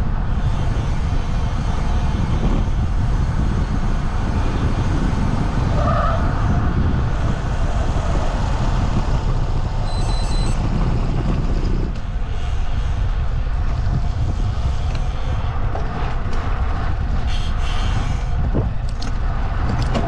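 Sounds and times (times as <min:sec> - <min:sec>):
wind and road noise: 0:00.0 - 0:20.0
short high electronic beeps: 0:09.8 - 0:10.6.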